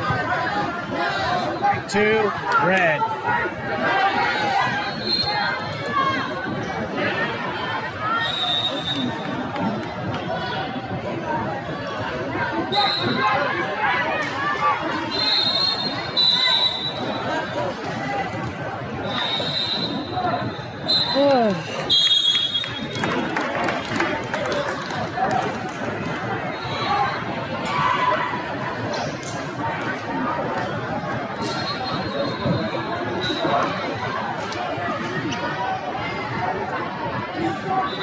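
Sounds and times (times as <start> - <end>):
many voices in echoing hall: 0.0 - 38.0.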